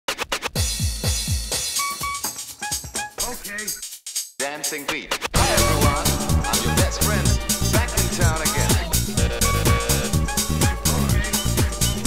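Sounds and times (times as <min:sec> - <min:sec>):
electronic dance track: 0:04.4 - 0:12.0
held synth note: 0:05.4 - 0:11.8.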